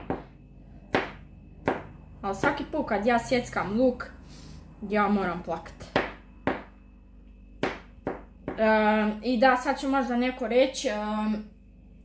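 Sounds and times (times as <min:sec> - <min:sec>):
knife knocking on cutting board: 0:05.9 - 0:06.7, 0:07.6 - 0:08.7.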